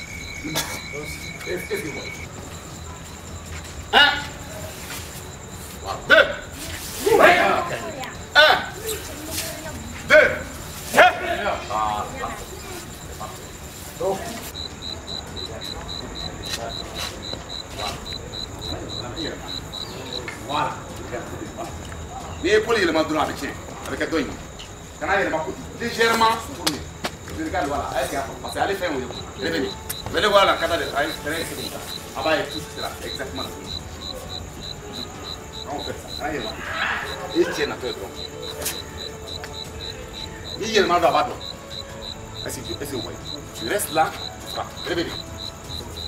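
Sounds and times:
crickets chirping: 0.0 - 46.0
voices: 0.0 - 46.0
men talking: 0.4 - 2.4, 5.8 - 8.8, 10.0 - 46.0.

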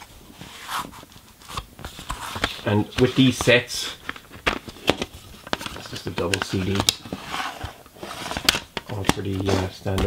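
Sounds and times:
plastic case scraping: 0.5 - 10.0.

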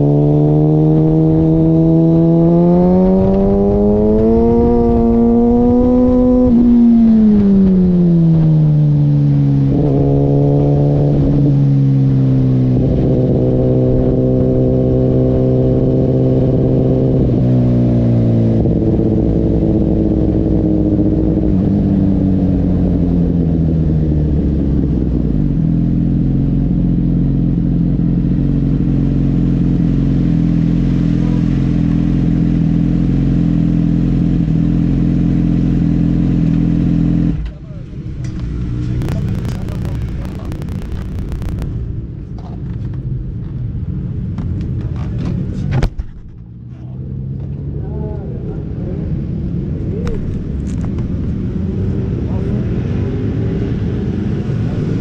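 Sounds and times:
motorcycle engine slowing: 0.0 - 43.6.

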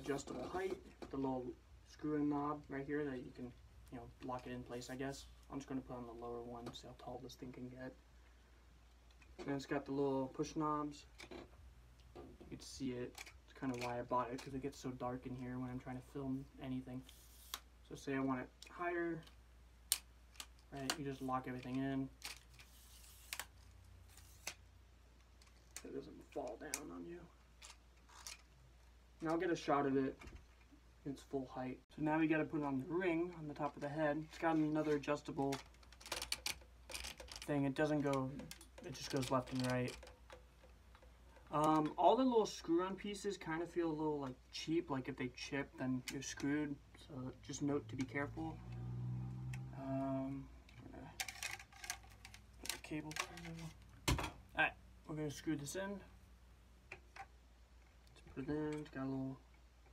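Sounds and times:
plastic ring light rattling: 34.4 - 42.0, 51.2 - 53.8.

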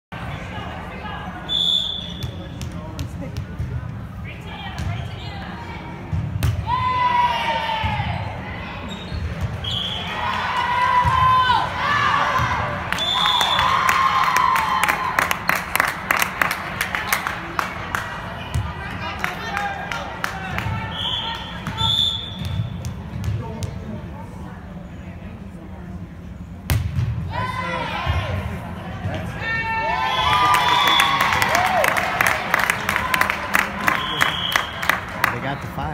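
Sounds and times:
short high whistle blasts: 1.5 - 2.3, 20.9 - 22.4.

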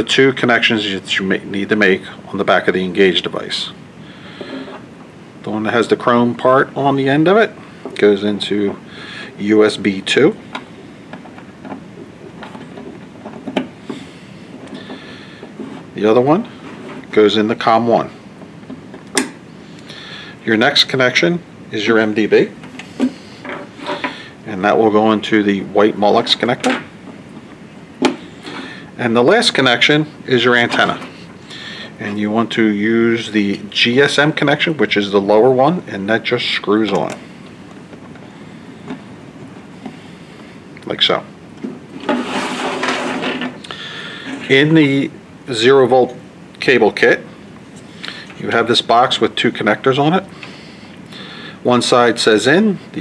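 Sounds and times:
background hiss: 0.0 - 53.0.

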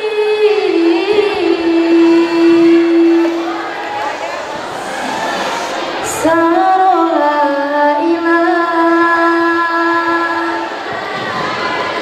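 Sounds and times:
girls singing: 0.0 - 12.0.

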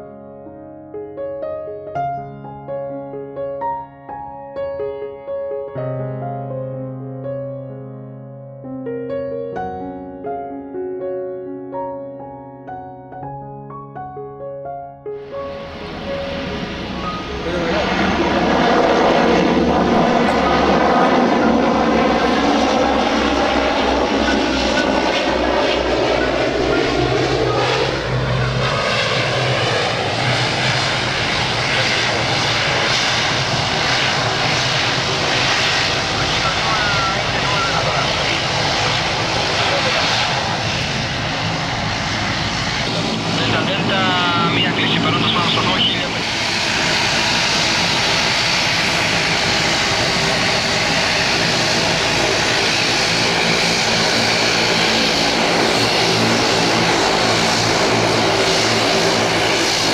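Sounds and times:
turboprop engines and propellers roaring: 15.3 - 59.9.

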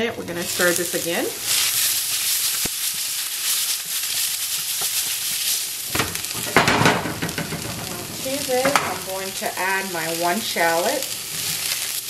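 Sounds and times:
vegetables sizzling in oil: 0.2 - 12.0
spatula scraping and clattering: 4.5 - 9.0.

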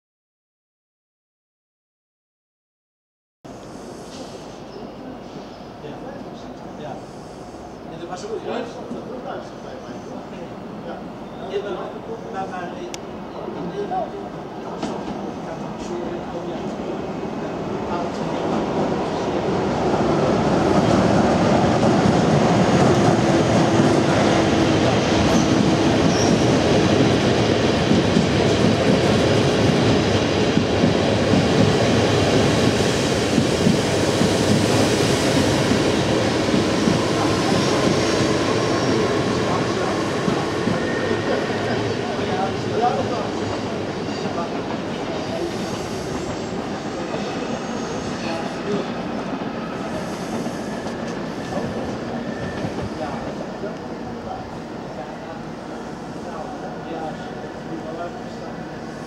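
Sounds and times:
train wheels rumbling on track: 3.6 - 59.0.

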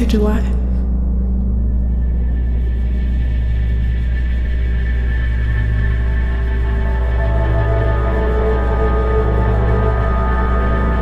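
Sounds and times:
deep sustained drone: 0.0 - 11.0.

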